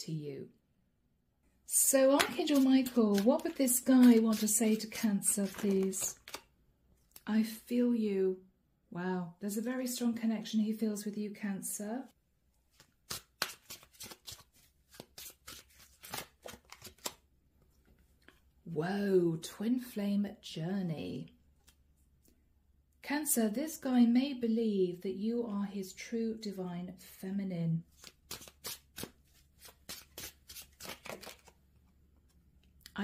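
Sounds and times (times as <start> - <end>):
cards shuffling: 1.8 - 6.5, 12.7 - 18.4, 27.9 - 32.4.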